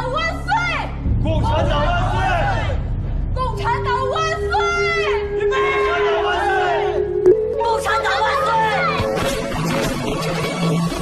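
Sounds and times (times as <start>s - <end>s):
people shouting a slogan: 5.4s - 7.0s.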